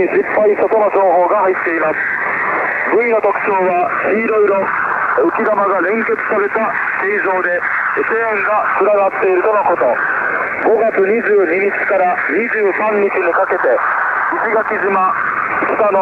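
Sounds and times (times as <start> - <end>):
announcer speaking over shortwave radio: 0.0 - 2.0, 2.8 - 10.0, 10.6 - 16.0.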